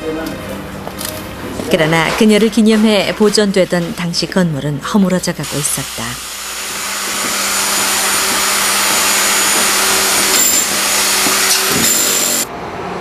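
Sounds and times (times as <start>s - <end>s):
power tool running: 5.4s - 12.5s.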